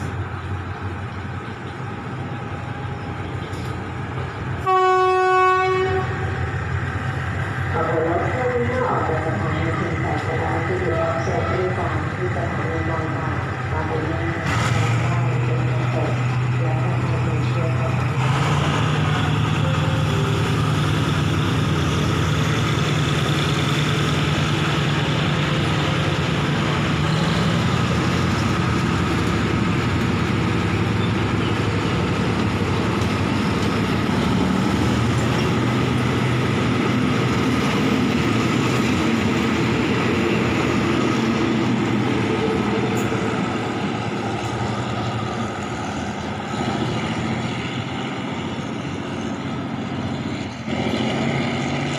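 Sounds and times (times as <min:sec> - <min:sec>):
low train hum: 0:00.0 - 0:51.9
train wheels rolling on rails: 0:00.0 - 0:51.9.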